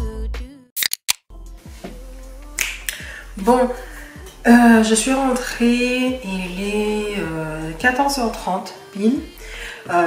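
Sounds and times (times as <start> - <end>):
sharp snap-like clicks: 0.8 - 1.3
faint music: 1.6 - 10.0.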